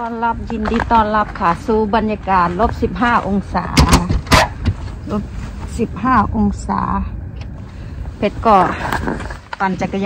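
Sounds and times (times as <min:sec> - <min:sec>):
woman speaking: 0:00.0 - 0:04.3, 0:05.0 - 0:07.2, 0:08.2 - 0:10.0
low rumble: 0:00.0 - 0:10.0.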